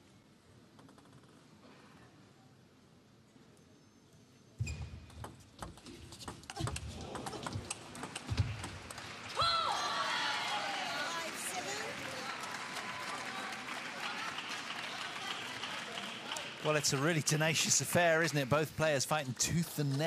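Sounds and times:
crowd cheering: 6.9s - 20.0s.

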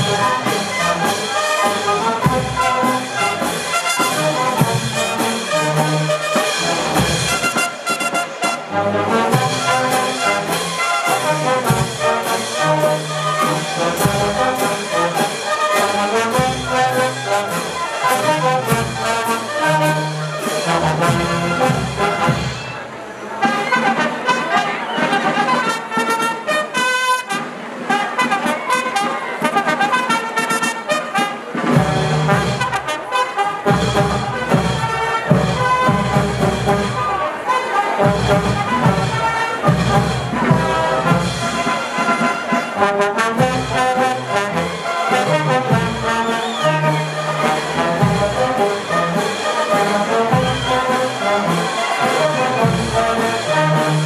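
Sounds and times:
snare drum: 0.0s - 22.8s, 23.4s - 37.2s, 37.8s - 54.0s
cymbals: 0.0s - 24.4s, 25.6s - 54.0s
trombones: 0.0s - 54.0s
trumpets: 0.0s - 54.0s
bass drum: 33.7s - 37.0s.

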